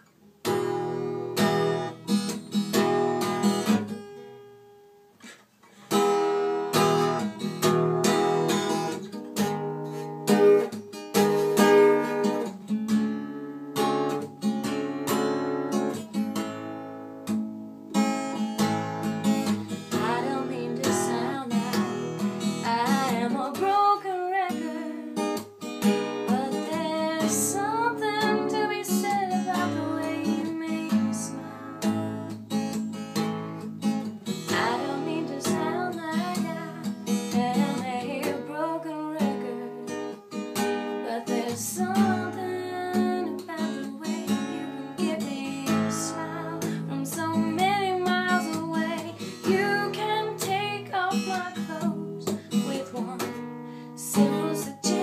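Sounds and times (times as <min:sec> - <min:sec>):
acoustic guitar chords: 0:00.0 - 0:55.0
person singing: 0:19.9 - 0:25.2, 0:26.3 - 0:32.3, 0:34.4 - 0:39.9, 0:41.0 - 0:53.4, 0:54.0 - 0:55.0.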